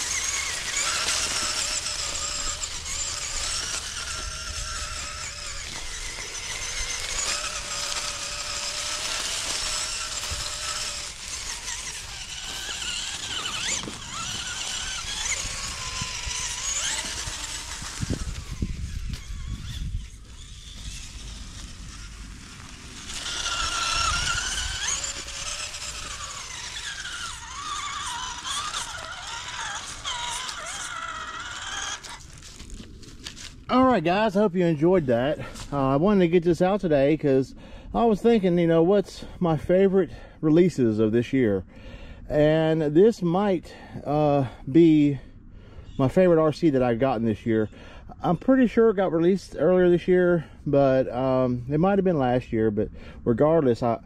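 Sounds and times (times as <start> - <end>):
rc car drivetrain whine: 0.0 - 54.0.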